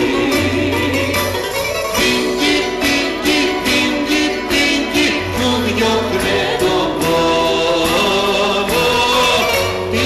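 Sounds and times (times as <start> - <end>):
woman and man singing: 0.0 - 1.4, 2.0 - 10.0
small band playing: 0.0 - 10.0.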